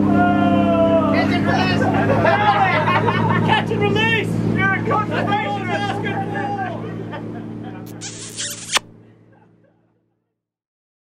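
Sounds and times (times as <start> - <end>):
boat engine droning: 0.0 - 7.9
high hissing zip: 7.9 - 8.9
sharp click: 7.9 - 8.9.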